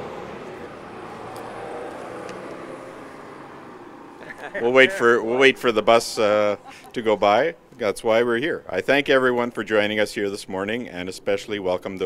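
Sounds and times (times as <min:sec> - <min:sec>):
bus driving past: 0:00.0 - 0:07.8.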